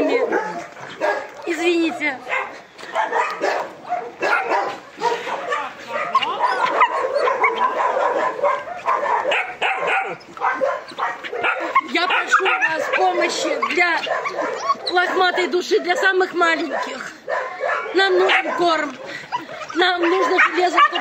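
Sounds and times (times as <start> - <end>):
young dogs yapping and whining: 0.0 - 21.0.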